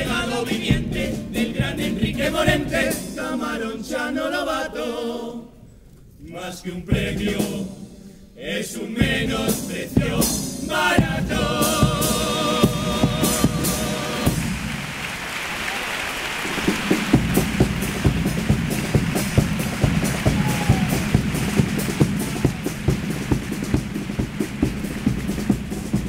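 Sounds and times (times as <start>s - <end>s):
bass drum and snare beat: 0.0s - 3.3s, 7.0s - 7.7s, 9.0s - 14.9s, 16.4s - 26.0s
audience applauding: 13.2s - 26.0s.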